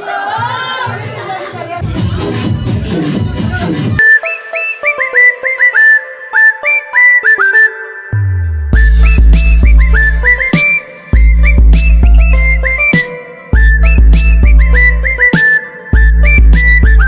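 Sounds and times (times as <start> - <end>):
whistled melody: 4.0 - 17.0
heavy bass line: 8.4 - 10.6, 11.2 - 12.9, 13.6 - 15.2.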